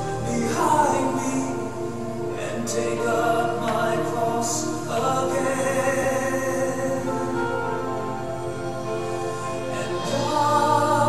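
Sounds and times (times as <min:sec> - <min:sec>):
choir singing worship music: 0:00.0 - 0:11.0.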